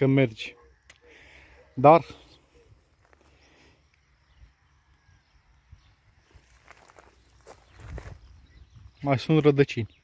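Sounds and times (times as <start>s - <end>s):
footsteps on dry grass and soil: 2.8s - 3.4s, 6.2s - 8.9s.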